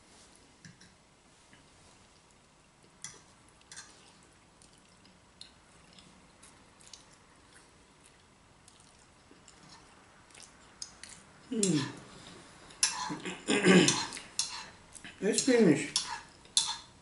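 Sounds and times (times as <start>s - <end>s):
chewing mouth noises: 3.5s - 12.0s.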